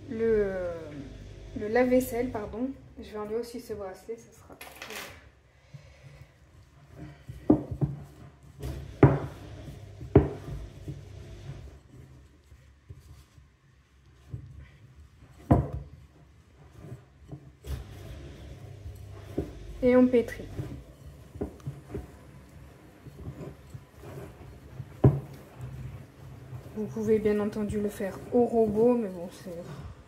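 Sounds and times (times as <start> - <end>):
dishwasher humming: 0.0 - 3.2, 8.6 - 11.8, 17.7 - 30.0
dough kneaded by hand: 0.0 - 4.4, 5.2 - 30.0.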